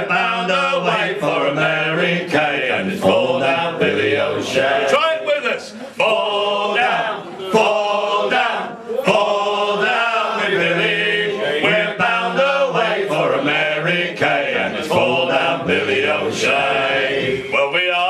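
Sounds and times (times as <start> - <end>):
men singing unaccompanied: 0.0 - 5.0, 6.0 - 18.0.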